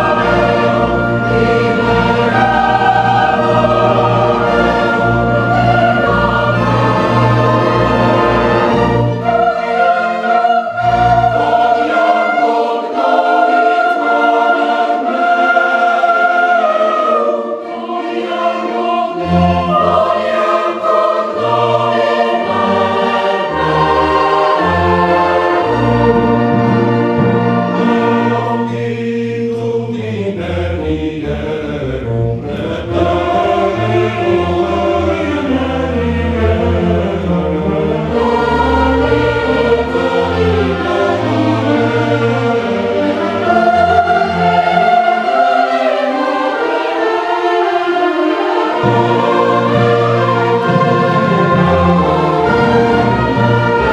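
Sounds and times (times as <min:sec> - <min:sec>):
mixed choir singing: 0:00.0 - 0:53.9
violins and clarinets: 0:00.0 - 0:53.9.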